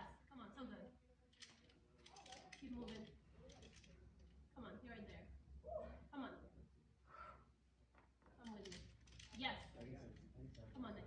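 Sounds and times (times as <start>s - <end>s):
faint indistinct speech: 1.2s - 4.2s.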